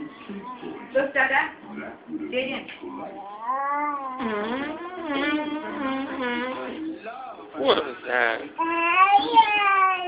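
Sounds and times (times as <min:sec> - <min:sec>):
baby crying: 0:03.1 - 0:04.2.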